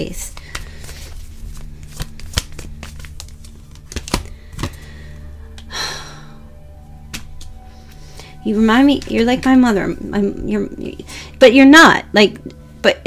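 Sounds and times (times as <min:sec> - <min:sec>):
cards shuffling clicks and snaps: 0:00.0 - 0:04.9, 0:05.5 - 0:05.7, 0:07.0 - 0:08.1.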